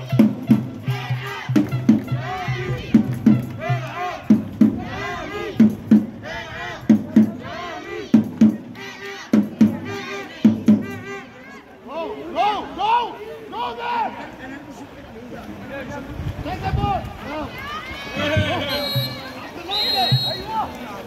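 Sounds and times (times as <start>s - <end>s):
music with steady beat: 0.0s - 6.2s, 8.1s - 11.2s
crowd shouting and calling: 0.8s - 14.7s, 16.4s - 21.0s.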